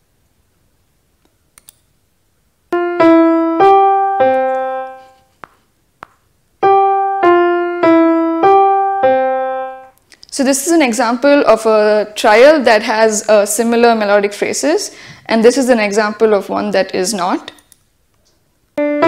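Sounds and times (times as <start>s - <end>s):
short piano phrases: 2.8s - 5.3s, 6.6s - 12.2s, 18.8s - 19.0s.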